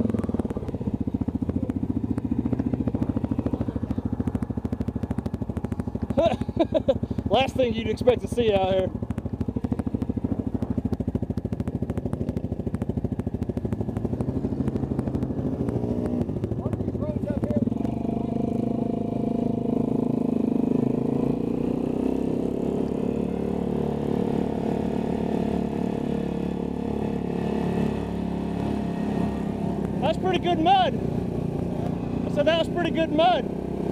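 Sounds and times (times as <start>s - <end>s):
quad bike engines: 0.0s - 33.9s.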